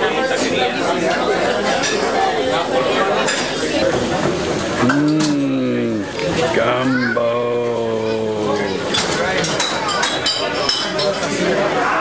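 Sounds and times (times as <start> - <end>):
voices: 0.0 - 12.0
cutlery and crockery clinking: 4.8 - 5.5, 8.9 - 11.5.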